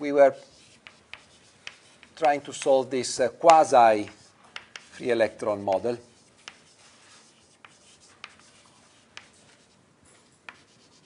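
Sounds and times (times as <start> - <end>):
chalk scratching on blackboard: 0.3 - 2.8, 3.4 - 11.0
chalk tapping on board: 0.4 - 9.8, 10.4 - 11.0.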